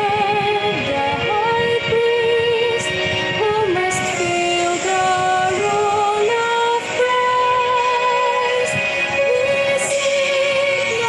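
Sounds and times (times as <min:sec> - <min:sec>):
slow hymn singing with accompaniment: 0:00.0 - 0:11.0.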